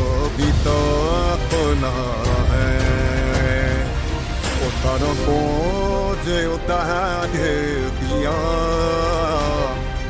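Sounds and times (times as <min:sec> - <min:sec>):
heavy bass and drum backing: 0:00.0 - 0:10.0.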